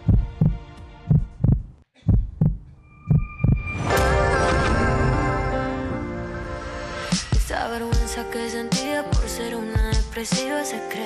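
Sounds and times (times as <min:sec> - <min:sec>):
heartbeat double thumps: 0:00.0 - 0:03.6
sustained music chord: 0:03.7 - 0:07.7.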